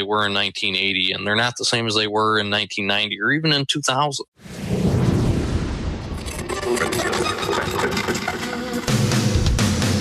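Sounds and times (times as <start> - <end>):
music: 7.8 - 10.0.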